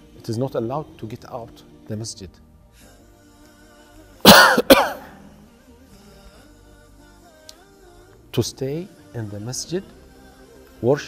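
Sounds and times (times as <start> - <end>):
man coughing: 4.3 - 5.2.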